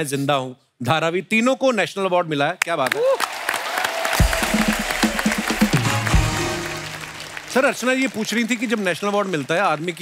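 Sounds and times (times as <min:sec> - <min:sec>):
audience applauding: 0:02.9 - 0:10.0.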